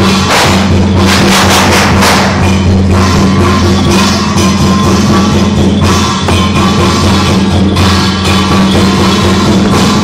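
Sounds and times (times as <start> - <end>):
cymbals clashing: 0.0 - 10.0
drum beating: 0.0 - 10.0.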